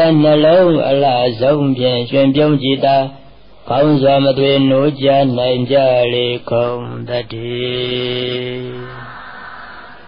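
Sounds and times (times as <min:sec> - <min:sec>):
man chanting: 0:00.0 - 0:10.0.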